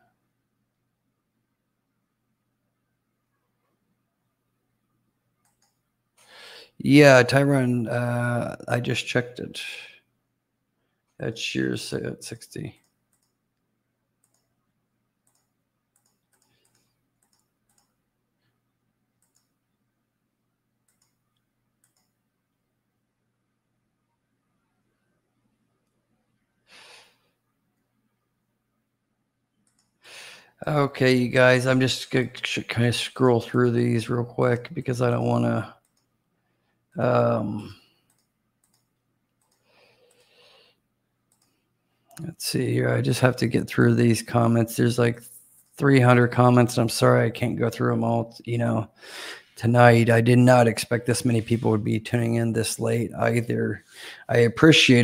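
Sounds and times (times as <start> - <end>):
low electrical hum: 0.0 - 55.0
computer mouse clicks: 5.4 - 5.8, 12.8 - 13.4, 14.2 - 14.6, 15.2 - 18.0, 19.2 - 19.6, 20.8 - 22.2, 29.6 - 30.0, 35.8 - 36.1, 38.0 - 40.3, 41.3 - 42.3
mouse and keyboard clicks: 15.2 - 18.0.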